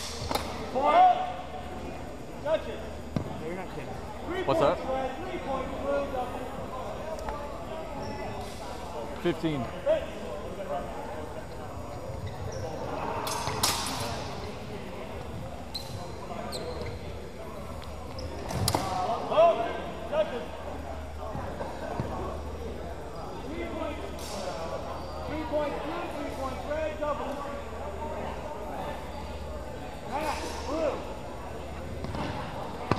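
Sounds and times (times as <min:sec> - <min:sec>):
people talking in a gymnasium: 0:00.0 - 0:32.9.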